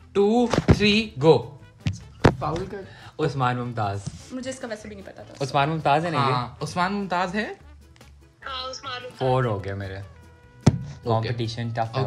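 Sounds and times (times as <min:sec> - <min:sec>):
hands slapping a tabletop: 0:00.5 - 0:00.9, 0:10.6 - 0:11.0.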